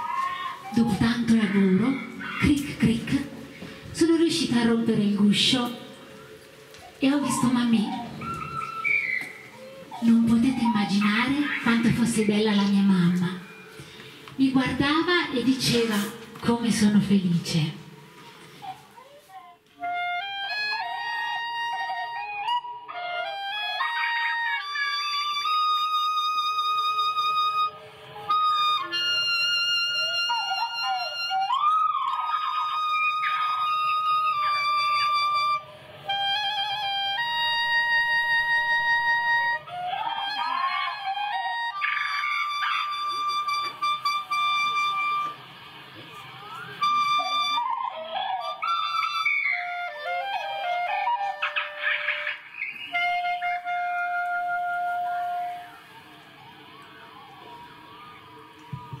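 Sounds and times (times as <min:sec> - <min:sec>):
solo clarinet melody: 0:19.8 - 0:45.6, 0:46.4 - 0:52.2, 0:52.9 - 0:57.5.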